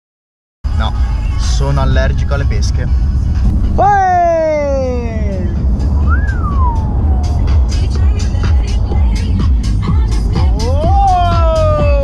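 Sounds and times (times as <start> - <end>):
car stereo music with heavy bass: 0.7 - 12.0
upward gliding tone: 3.6 - 9.0.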